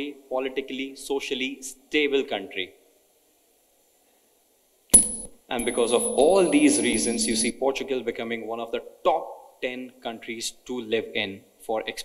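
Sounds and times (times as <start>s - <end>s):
sharp click: 4.9s - 5.8s
faint high-pitched tone: 5.0s - 7.6s.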